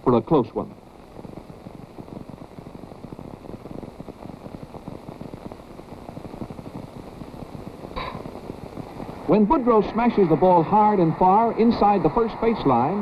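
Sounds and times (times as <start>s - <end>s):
film crackle: 0.0s - 13.0s.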